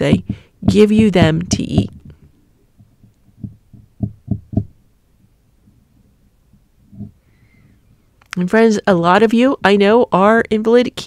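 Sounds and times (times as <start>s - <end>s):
woman breathing close to microphone: 0.2s - 0.6s, 6.9s - 8.1s.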